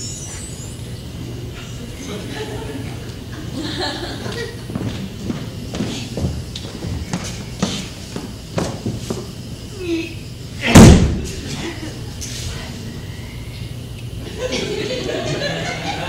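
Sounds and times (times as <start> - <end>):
footsteps on wooden floor: 4.3 - 9.4
trapdoor lid slamming shut: 10.6 - 11.4.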